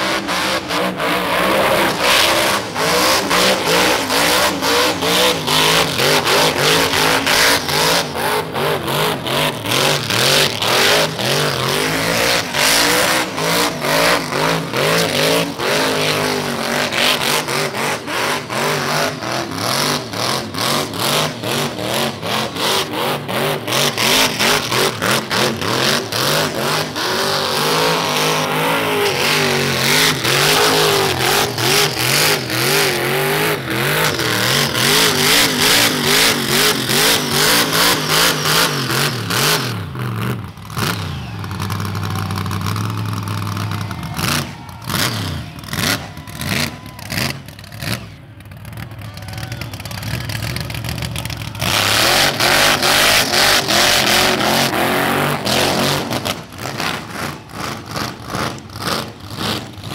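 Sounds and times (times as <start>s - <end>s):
engine revving in pulses: 0.0s - 48.8s, 50.2s - 59.9s
engine idling: 41.1s - 51.7s.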